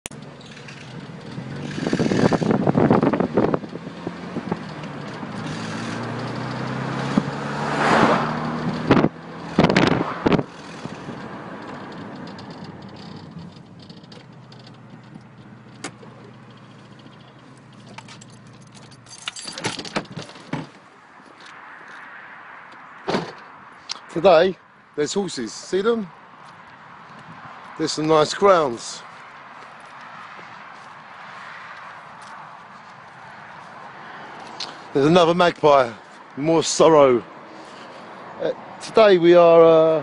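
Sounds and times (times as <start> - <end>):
traffic hum: 0.0 - 40.0
cars passing: 0.1 - 40.0.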